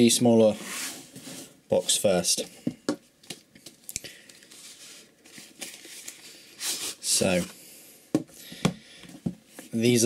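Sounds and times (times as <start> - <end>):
cardboard rustling and rubbing: 0.5 - 2.0
cardboard scrape: 0.5 - 2.0.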